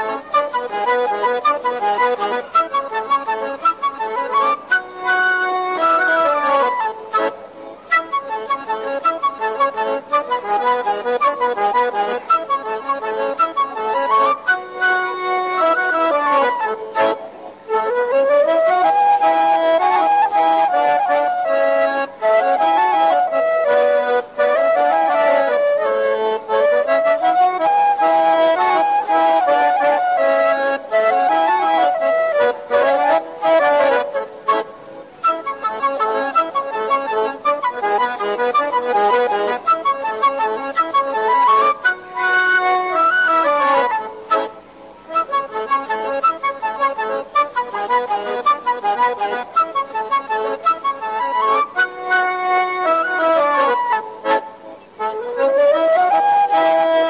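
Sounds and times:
button accordion folk dance tune: 0.0 - 57.0
wind instrument: 0.0 - 57.0.

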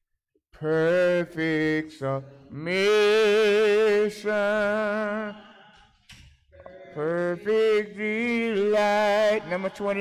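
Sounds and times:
man singing long held notes: 6.6 - 10.0.

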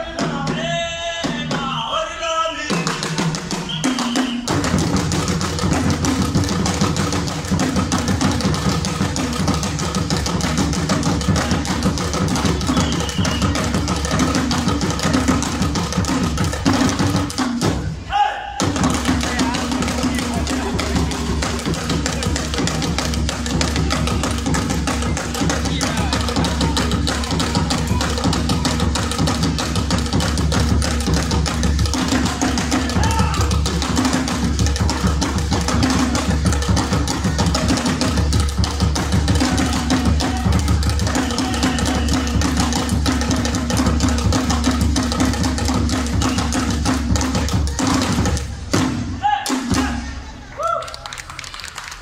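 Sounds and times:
hand drums playing: 2.7 - 17.9, 18.6 - 50.1.

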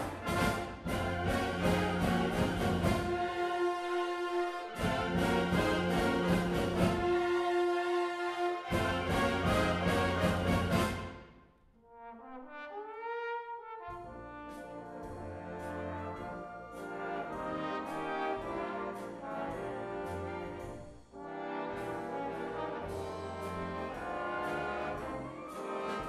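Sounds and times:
trombones playing: 0.0 - 26.0
wind band playing: 0.0 - 26.0.

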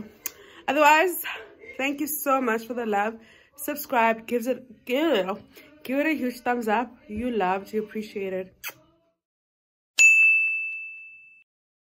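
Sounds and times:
bright chime ding: 10.0 - 11.4.

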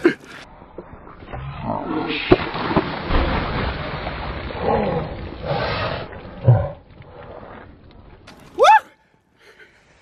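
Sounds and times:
water splashing from bucket: 2.3 - 5.5.

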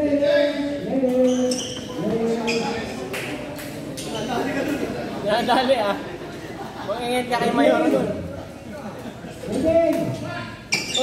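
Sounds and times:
people talking and calling out: 0.0 - 11.0.

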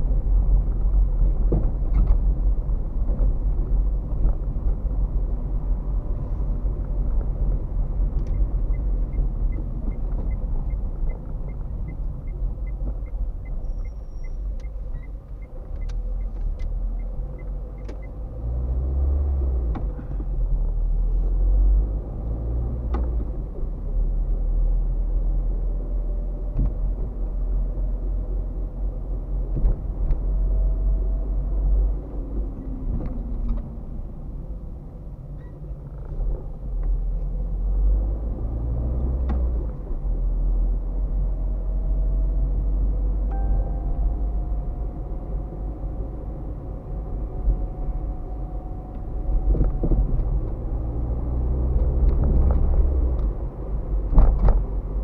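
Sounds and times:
car engine and tyre rumble: 0.0 - 55.0
turn signal ticking: 8.1 - 18.2.

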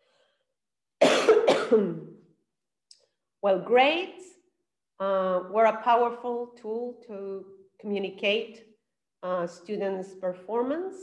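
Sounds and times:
woman coughing: 1.0 - 2.1.

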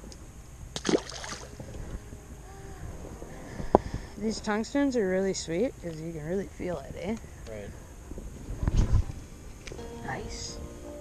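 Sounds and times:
wind rumble on microphone: 0.0 - 10.8.

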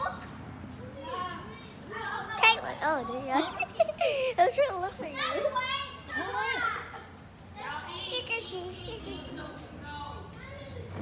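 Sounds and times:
children's voices at play: 0.0 - 11.0
low background murmur: 0.0 - 11.0.

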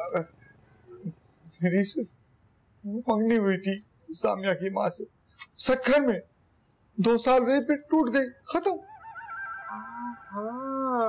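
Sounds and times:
quavering voice-like sound: 8.8 - 11.0.

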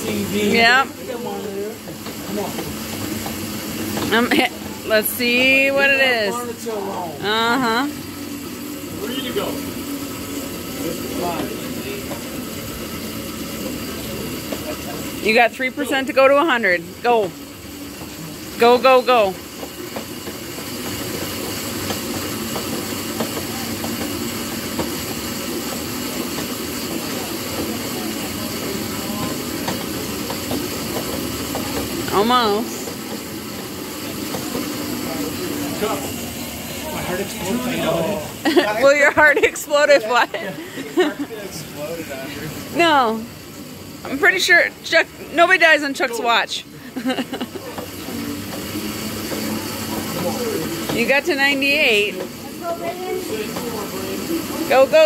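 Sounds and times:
arm-crank ergometers whirring: 0.0 - 55.0.

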